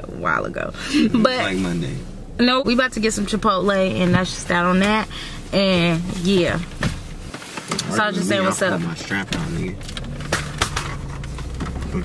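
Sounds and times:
car engine cabin rumble: 0.0 - 12.0.

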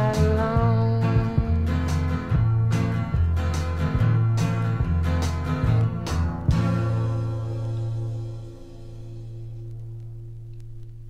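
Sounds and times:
acoustic guitar chord ringing: 0.0 - 10.4.

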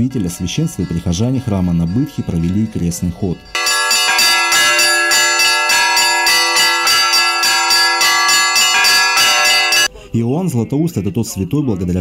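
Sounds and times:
church bells ringing a peal: 0.0 - 9.9.

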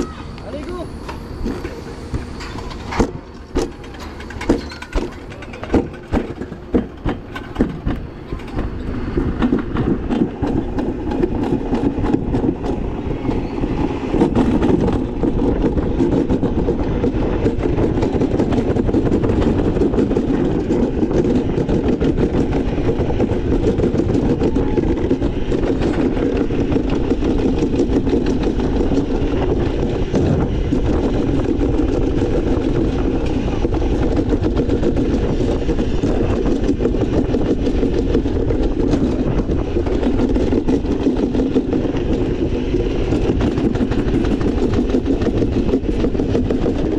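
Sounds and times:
sled wheels rumbling on steel chute: 0.0 - 46.9
wind on microphone: 5.8 - 46.9.

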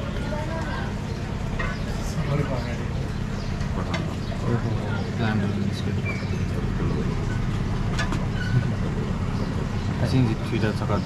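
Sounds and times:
faint voices talking: 0.0 - 11.0.

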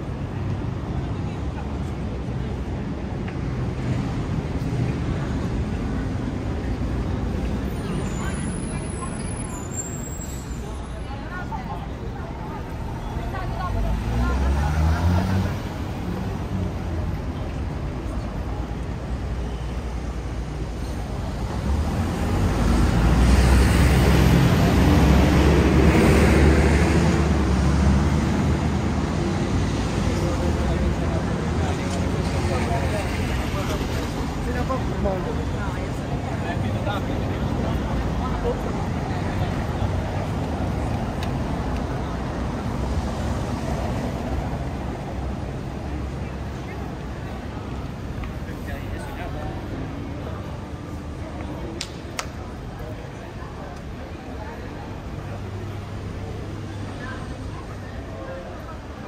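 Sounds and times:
street traffic: 0.0 - 59.0
voices of passersby: 0.0 - 59.0.

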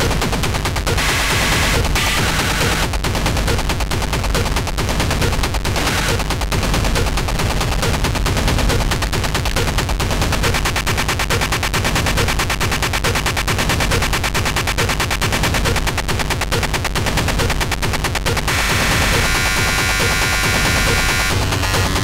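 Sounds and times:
distorted noise hits: 0.0 - 3.8, 4.4 - 15.9, 18.3 - 22.0
heavy bass: 0.0 - 22.0
static-like layered tone: 0.9 - 2.9, 18.4 - 22.0.

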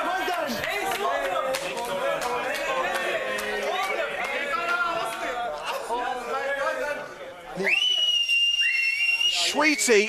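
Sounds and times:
spectators whistling: 7.6 - 10.0.

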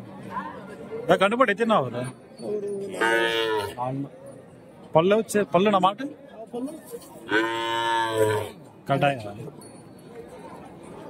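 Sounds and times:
cow mooing: 3.0 - 3.8, 7.3 - 8.6.

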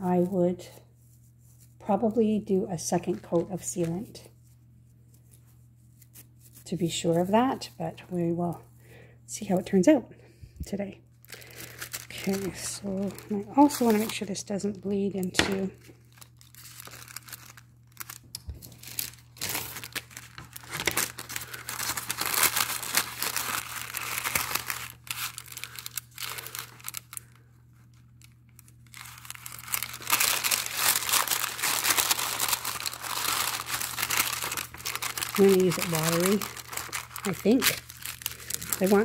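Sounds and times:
paper crinkling and rustling: 11.2 - 14.4, 15.1 - 39.0
paper tearing: 16.4 - 27.2, 28.2 - 39.0.

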